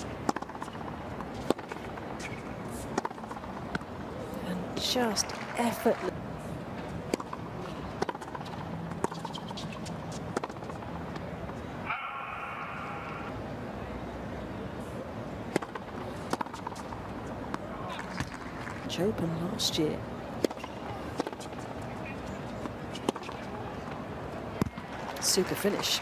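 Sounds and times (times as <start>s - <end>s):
tennis ball strikes: 0.0s - 3.8s, 8.0s - 10.8s, 15.5s - 18.8s, 20.4s - 21.5s, 22.6s - 23.5s
stadium crowd murmur: 11.0s - 16.3s, 17.2s - 26.0s.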